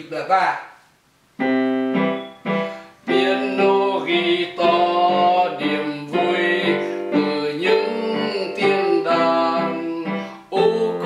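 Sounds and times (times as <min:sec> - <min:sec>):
digital piano chords: 0:01.4 - 0:11.0.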